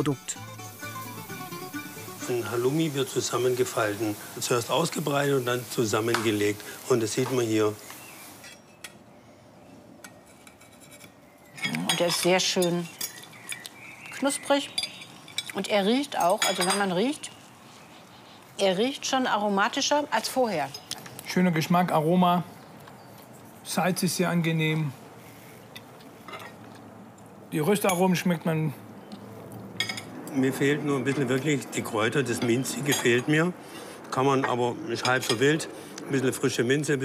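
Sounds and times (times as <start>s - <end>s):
low background hiss: 0.0s - 9.8s
cutlery clinking on a plate: 16.2s - 16.9s, 29.8s - 30.1s.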